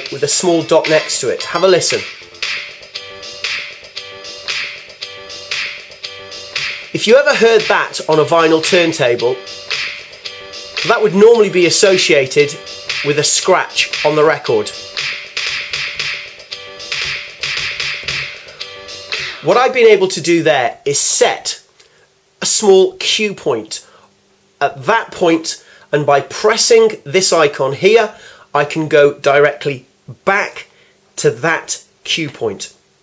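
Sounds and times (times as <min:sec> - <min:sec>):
music track skipping on a loop: 0:00.0 - 0:20.1.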